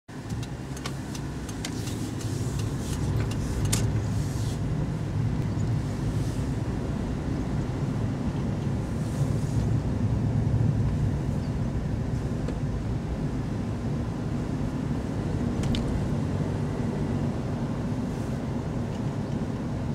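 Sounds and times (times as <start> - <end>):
car engine and road noise: 0.1 - 19.9.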